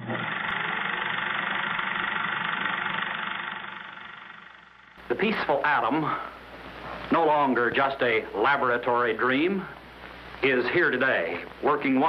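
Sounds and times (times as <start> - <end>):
film projector whirring: 0.0 - 12.0.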